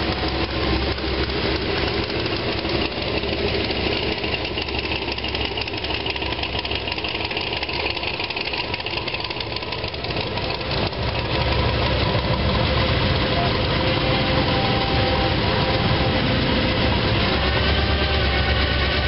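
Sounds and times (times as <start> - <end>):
car engines running slowly: 0.0 - 19.0.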